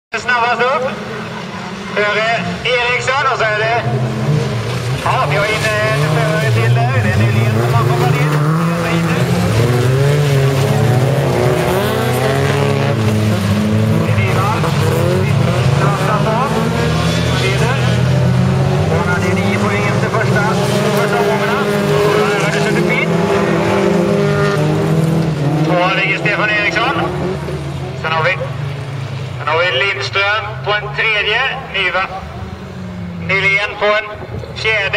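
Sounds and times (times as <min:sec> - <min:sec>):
race car engines revving: 0:00.1 - 0:34.9.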